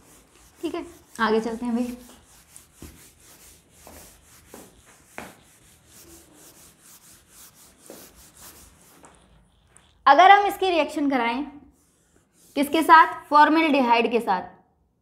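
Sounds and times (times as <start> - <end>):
duster rubbing on whiteboard: 0.0 - 11.0, 11.7 - 13.4.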